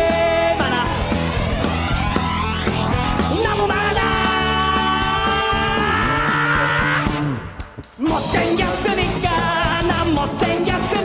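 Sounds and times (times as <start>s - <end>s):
pop-rock band playing: 0.0s - 11.0s.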